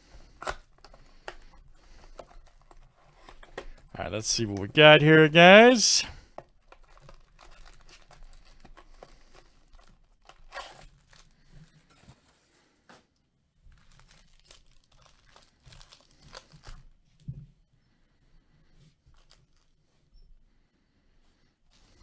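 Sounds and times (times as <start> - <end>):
foil wrappers crinkling and tearing: 6.8 - 11.8, 13.7 - 17.0, 19.1 - 19.7.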